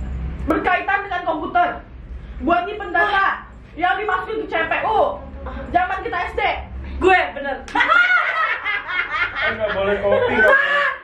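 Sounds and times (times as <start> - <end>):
young women laughing: 7.7 - 11.0
excited exclamations: 10.4 - 11.0.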